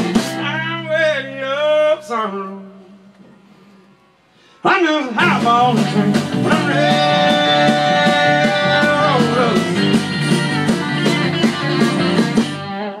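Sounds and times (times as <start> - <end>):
live country band playing: 0.0 - 2.7, 4.9 - 13.0.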